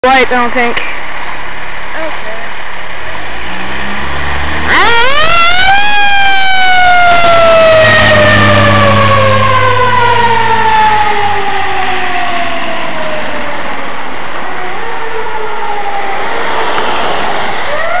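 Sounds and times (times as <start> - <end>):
truck engine rumble: 0.7 - 18.0
fire engine siren: 3.9 - 18.0.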